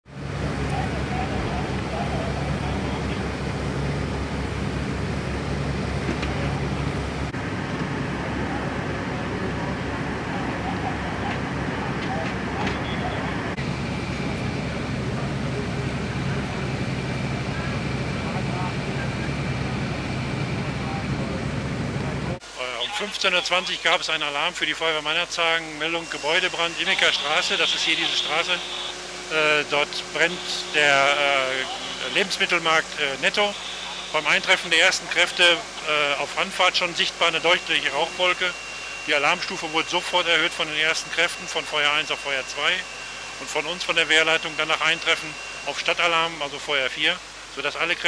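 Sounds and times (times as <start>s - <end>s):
fire engine engine drone: 0.0s - 48.0s
faint indistinct voices: 0.3s - 3.3s, 8.1s - 13.6s, 14.9s - 24.0s, 25.4s - 38.5s.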